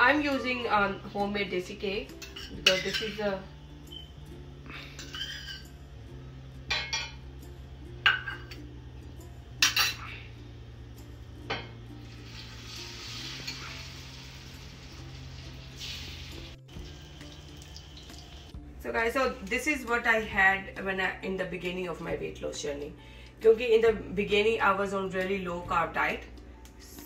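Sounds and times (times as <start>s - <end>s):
metal spoon clinking on steel: 2.1s - 3.2s
egg sizzling in a pan: 11.5s - 18.6s.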